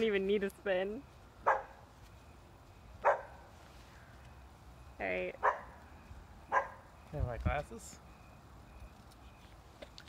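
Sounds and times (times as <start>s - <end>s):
dog barking: 1.4s - 1.8s, 3.0s - 3.4s, 5.4s - 5.8s, 6.5s - 6.8s.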